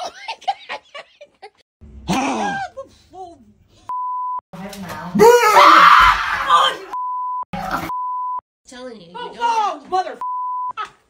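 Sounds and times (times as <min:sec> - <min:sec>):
censor beep: 0:03.9 - 0:04.4, 0:07.0 - 0:08.4, 0:10.2 - 0:10.7.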